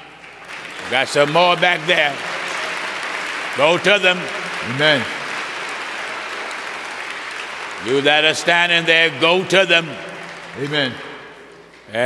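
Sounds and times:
congregation applauding: 0:00.0 - 0:11.8
man speaking: 0:00.9 - 0:02.2, 0:03.6 - 0:05.2, 0:07.8 - 0:10.0, 0:10.6 - 0:11.1.

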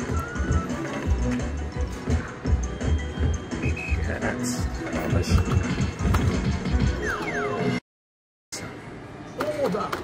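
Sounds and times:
slot machine game music: 0:00.0 - 0:07.8.

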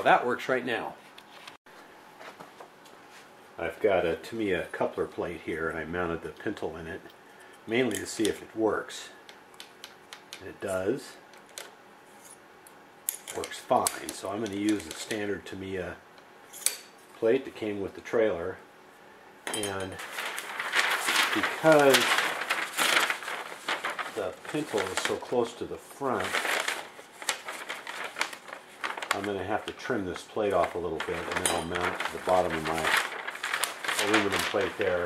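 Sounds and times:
paper rustle: 0:19.6 - 0:35.0.

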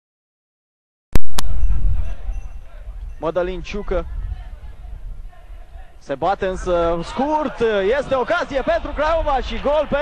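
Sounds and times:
loud low rumble: 0:01.2 - 0:03.0.

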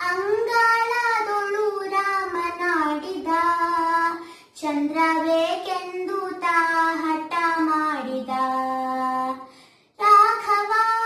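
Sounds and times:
girl singing long held notes: 0:00.0 - 0:11.0.

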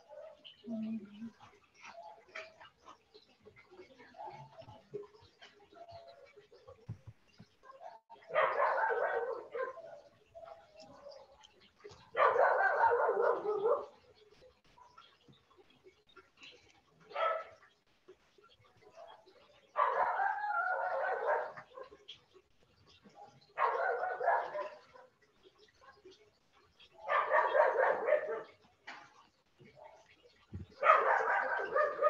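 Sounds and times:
dog barking rapidly: 0:07.6 - 0:11.3, 0:12.1 - 0:14.0, 0:17.1 - 0:17.6, 0:19.8 - 0:22.0, 0:23.5 - 0:25.1, 0:27.0 - 0:28.6, 0:30.8 - 0:32.0.

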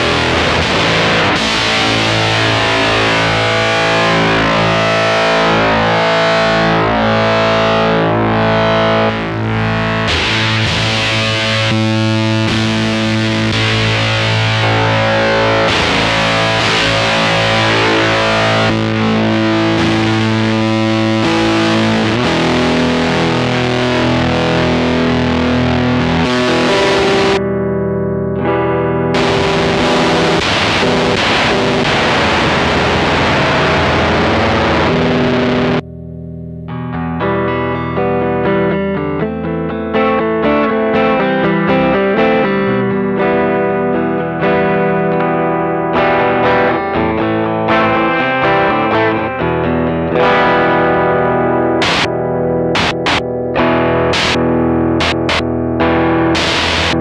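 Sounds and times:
fuzzed electric guitar chords: 0:00.0 - 0:57.0.

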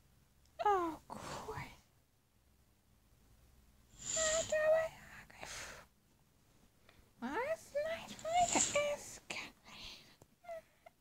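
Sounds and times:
whispery hiss: 0:03.9 - 0:05.9, 0:07.6 - 0:10.2
high-pitched voice sounds: 0:04.0 - 0:04.9, 0:07.4 - 0:09.1.

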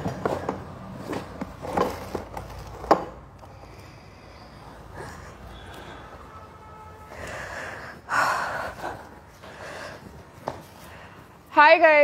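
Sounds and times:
woman breathing hard through mask: 0:03.3 - 0:11.5.

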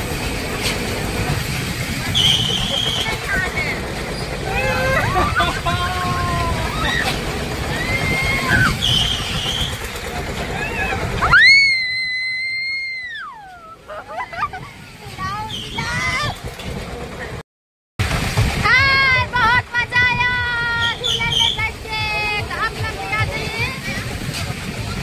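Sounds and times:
rushing wind: 0:00.0 - 0:17.4, 0:18.0 - 0:25.0
people screaming: 0:04.4 - 0:09.7, 0:10.4 - 0:14.5
people laughing: 0:04.5 - 0:07.2, 0:13.7 - 0:14.8
excited shrieks: 0:06.5 - 0:09.8.

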